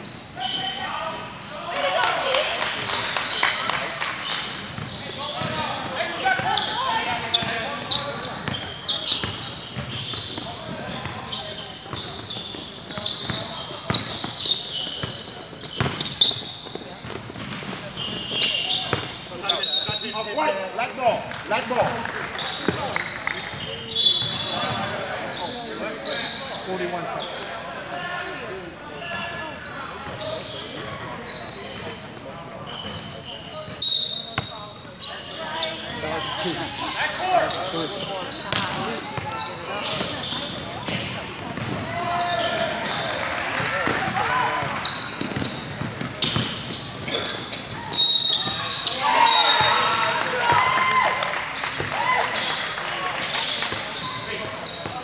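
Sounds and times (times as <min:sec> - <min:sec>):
shoe squeaks on court: 0:00.0 - 0:02.0, 0:04.2 - 0:20.6, 0:21.9 - 0:28.0, 0:29.0 - 0:50.1, 0:51.3 - 0:55.0.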